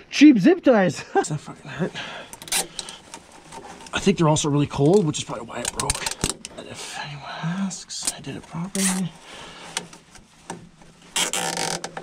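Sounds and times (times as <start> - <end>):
faint rustling: 1.6 - 12.0
zip tie clicks: 2.4 - 3.0, 11.2 - 11.9.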